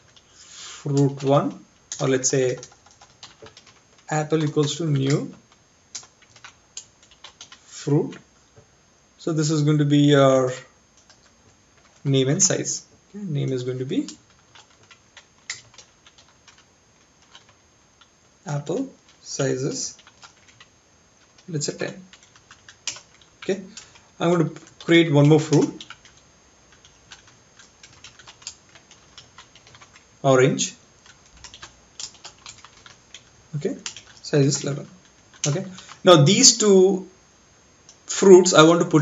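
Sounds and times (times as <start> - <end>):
computer keyboard typing: 0.0 - 8.2, 11.0 - 12.6, 13.2 - 36.8
keyboard keystrokes: 14.0 - 16.6, 21.3 - 24.0, 24.6 - 30.0, 31.0 - 36.0.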